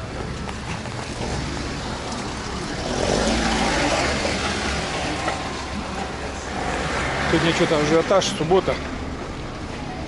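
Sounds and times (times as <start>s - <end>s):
traffic rushing and rumbling: 0.0s - 10.0s.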